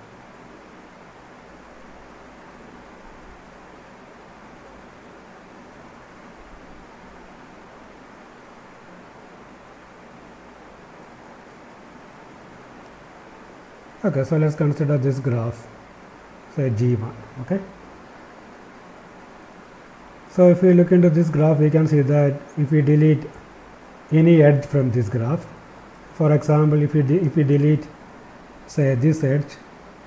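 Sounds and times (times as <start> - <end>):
low background hiss: 0.0 - 30.0.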